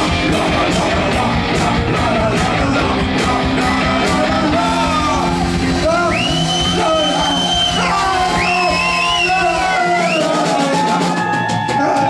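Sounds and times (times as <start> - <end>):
electric guitar: 0.0 - 11.7
drums: 0.0 - 12.0.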